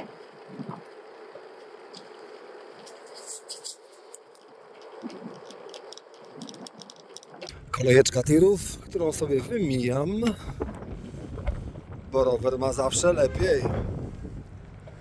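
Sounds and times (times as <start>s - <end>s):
tyres humming on asphalt: 0.0s - 15.0s
wind on camera: 0.0s - 15.0s.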